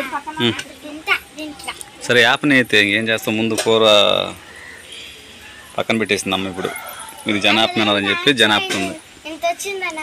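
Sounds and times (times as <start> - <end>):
children talking: 0.0 - 10.0.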